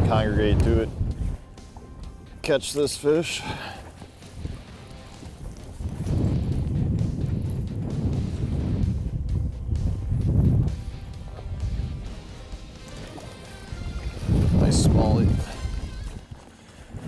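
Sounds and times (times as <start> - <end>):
background music: 0.0 - 17.0
wind buffeting microphone: 0.0 - 17.0.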